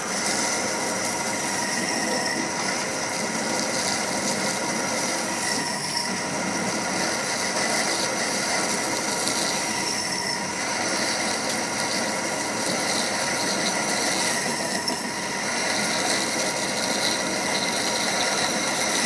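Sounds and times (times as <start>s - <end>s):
drill boring into metal workpiece: 0.0s - 19.0s
metal lathe whirring and whining: 0.0s - 19.0s.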